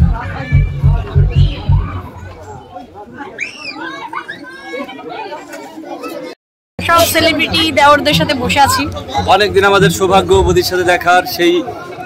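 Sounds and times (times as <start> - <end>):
general chatter: 0.0 - 12.0
children calling out: 1.4 - 6.4.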